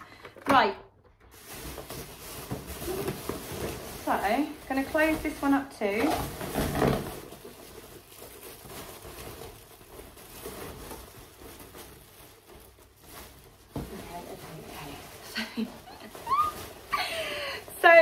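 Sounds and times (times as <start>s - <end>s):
plastic bag rustling: 0.0s - 18.0s.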